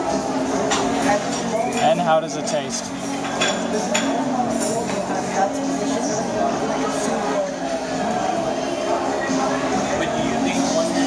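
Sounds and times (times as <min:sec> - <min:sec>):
restaurant background chatter: 0:00.0 - 0:11.0
cutlery clinking on dishes: 0:00.6 - 0:02.1, 0:03.0 - 0:05.2.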